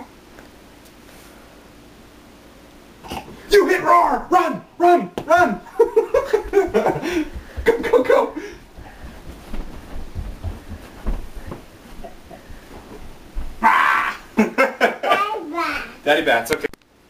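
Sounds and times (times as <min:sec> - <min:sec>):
low thuds: 0:06.0 - 0:13.6
people shouting and laughing: 0:13.6 - 0:15.4.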